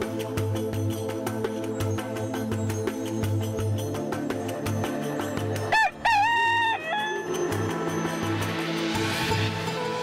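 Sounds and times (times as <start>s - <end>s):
background music: 0.0s - 10.0s
rooster crowing: 5.7s - 7.3s.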